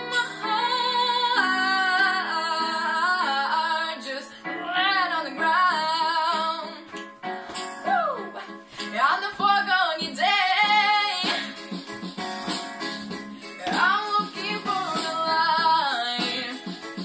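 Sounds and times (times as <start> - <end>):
girl singing a pop ballad: 0.0 - 17.0
instrumental accompaniment: 0.0 - 17.0.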